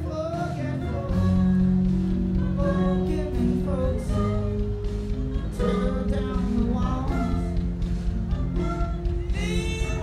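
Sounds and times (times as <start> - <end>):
acoustic guitar: 0.0 - 10.0
voices singing: 0.0 - 10.0.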